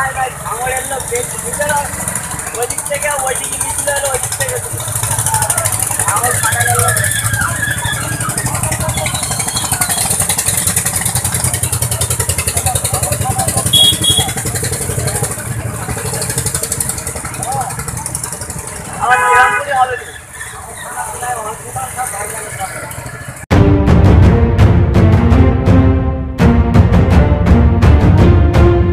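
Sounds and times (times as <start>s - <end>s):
vehicle engines running: 0.0s - 23.5s.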